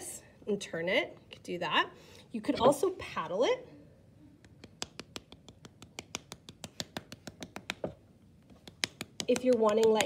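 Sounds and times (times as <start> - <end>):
paddle tapping clay pot: 4.5 - 8.0, 8.6 - 10.0.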